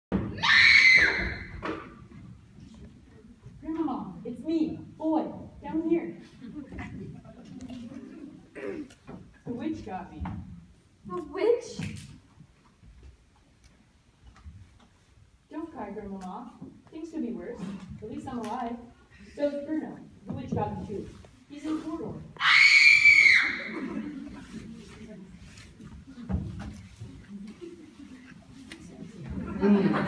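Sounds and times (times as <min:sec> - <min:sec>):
high-pitched scream: 0:22.4 - 0:23.8
footsteps on stage floor: 0:24.3 - 0:29.6.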